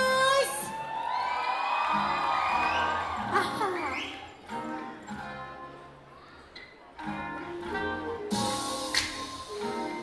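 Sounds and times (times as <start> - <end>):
audience cheering: 0.5 - 4.3.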